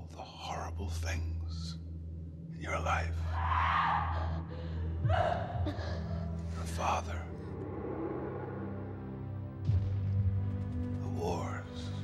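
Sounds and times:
low steady drone: 0.0s - 12.0s
breathy whispering: 2.6s - 9.4s.

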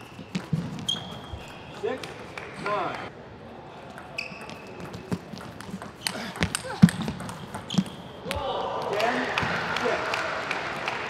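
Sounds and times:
shoes squeaking on floor: 0.0s - 2.4s, 4.0s - 8.4s
table tennis ball clicks: 3.9s - 8.4s.

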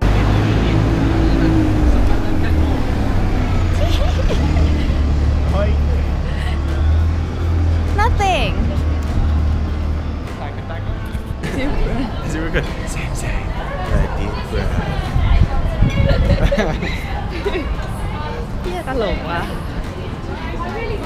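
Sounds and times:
bus engine rumbling: 0.0s - 21.0s
street noise: 0.0s - 21.0s.

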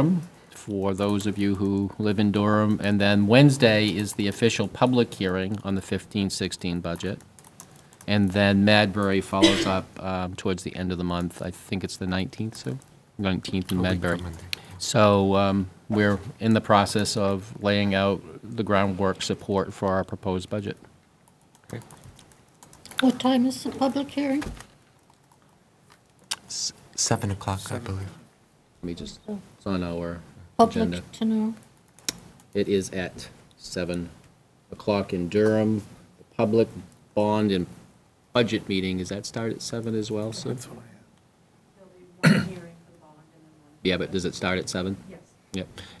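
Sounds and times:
typing on computer keyboard: 6.9s - 8.4s, 21.3s - 23.1s
person coughing: 9.4s - 9.8s, 42.2s - 42.7s.

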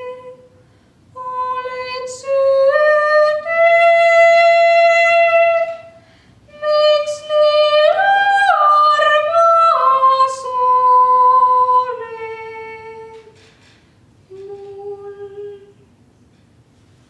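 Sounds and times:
girl singing unaccompanied: 0.0s - 0.5s, 1.1s - 13.4s, 14.3s - 15.8s.

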